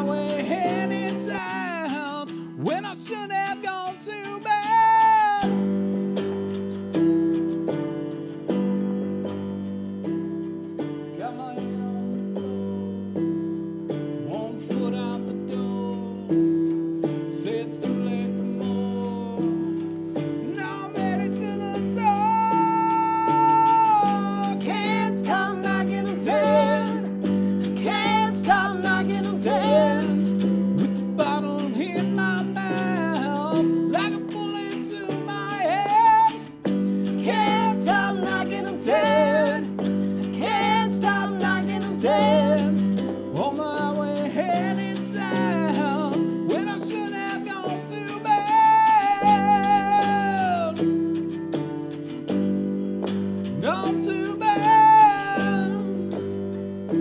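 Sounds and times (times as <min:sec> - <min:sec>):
person singing: 0:00.0 - 0:06.5, 0:10.8 - 0:12.7, 0:13.9 - 0:52.2, 0:53.1 - 0:57.0
electric guitar and keyboard playing: 0:00.0 - 0:57.0.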